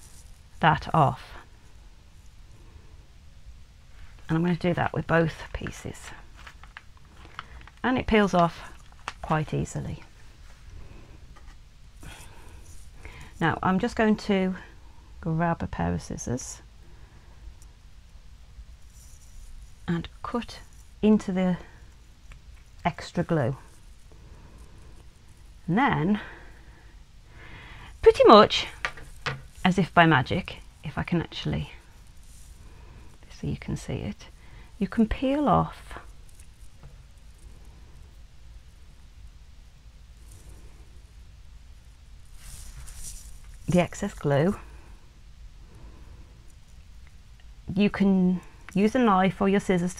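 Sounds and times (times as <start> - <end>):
faint handling rustle: 0.0 - 3.0, 3.8 - 14.9, 18.7 - 38.9, 40.1 - 49.9
low steady hum: 0.0 - 49.9.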